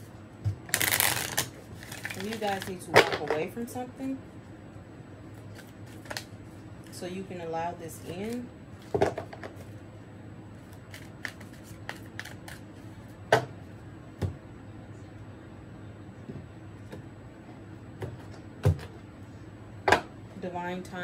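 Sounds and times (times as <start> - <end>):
cards being shuffled: 0.7 - 2.8, 10.6 - 12.8.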